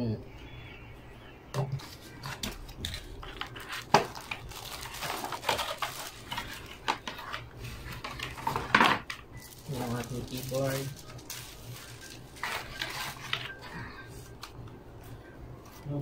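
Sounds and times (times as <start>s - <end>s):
plastic wrapping crinkling: 2.2s - 14.6s.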